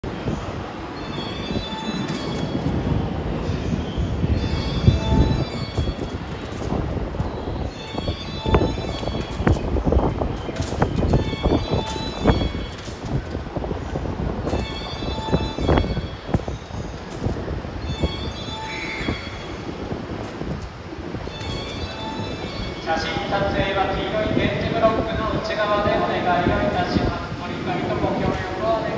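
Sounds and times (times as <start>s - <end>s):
wheel squeal: 17.8s - 19.7s.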